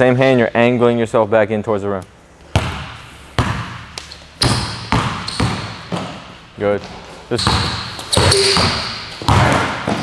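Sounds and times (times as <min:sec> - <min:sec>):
basketball bouncing on hardwood: 0:04.4 - 0:06.2, 0:07.4 - 0:10.0.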